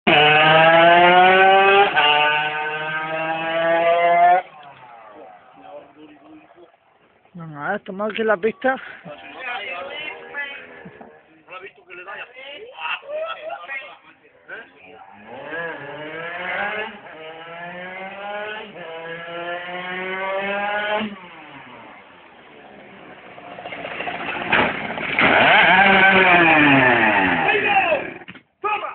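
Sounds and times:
two-stroke engine at high revs: 0.1 - 4.5, 15.1 - 28.2
sharp knock of bike crashing: 23.7 - 26.1.

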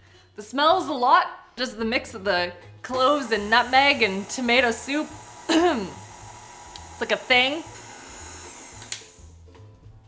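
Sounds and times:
soft background music: 0.0 - 10.0
stand mixer motor whirring: 3.0 - 9.3.

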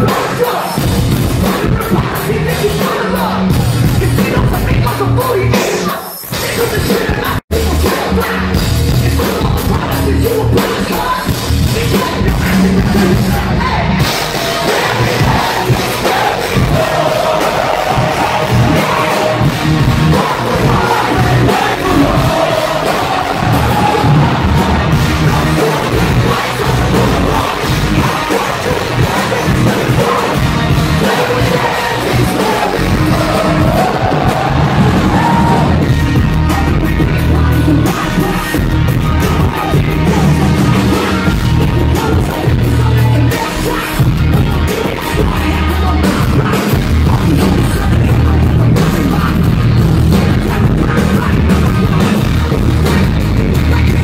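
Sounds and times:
crowd noise: 0.0 - 54.0
rap rock band playing live: 0.0 - 54.0.

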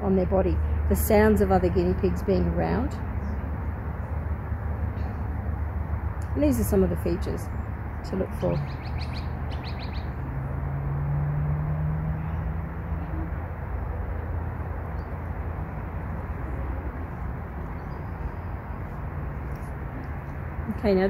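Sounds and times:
low outdoor rumble: 0.0 - 21.0
bird chirps: 8.4 - 10.2.

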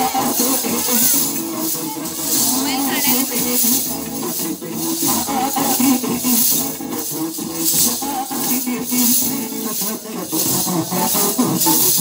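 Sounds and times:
small metal cymbals jingling: 0.0 - 12.0.

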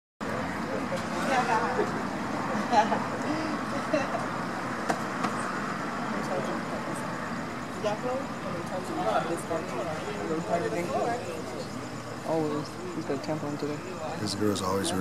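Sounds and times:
indistinct voices talking: 0.2 - 15.0
vehicle noise: 0.2 - 15.0.

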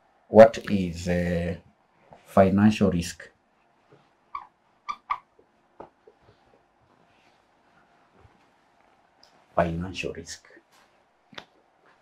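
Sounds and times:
marker squeaking on whiteboard: 3.9 - 6.6.

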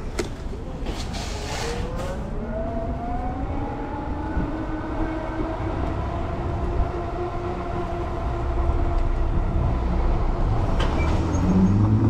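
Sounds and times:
wind rumbling on microphone: 1.8 - 12.0.

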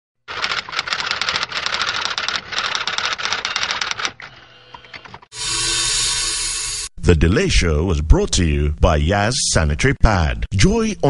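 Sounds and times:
rapid mechanical clicking: 0.3 - 4.3.

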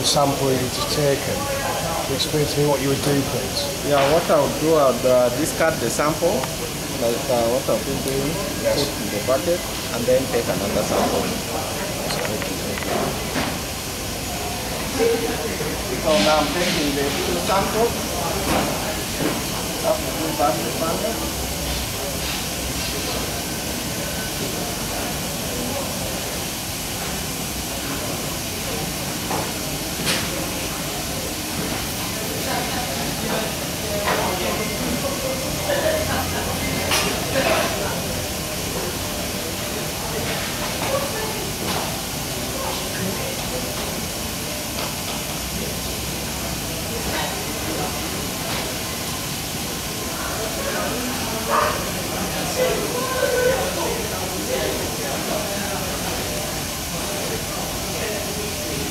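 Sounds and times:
faint voices: 0.0 - 58.9
steady hiss: 0.0 - 58.9.

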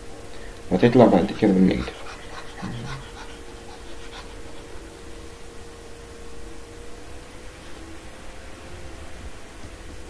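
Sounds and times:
faint steady hum: 0.0 - 10.0
soft breathing: 1.4 - 5.3.

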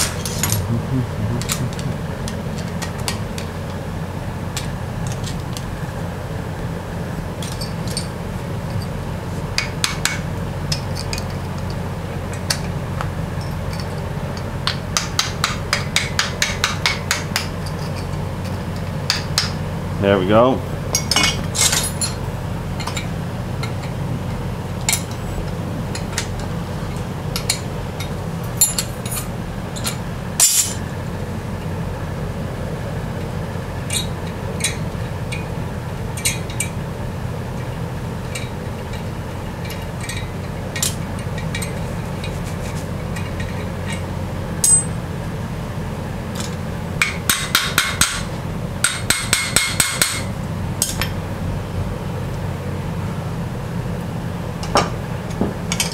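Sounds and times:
shop fan hum: 0.0 - 55.9.

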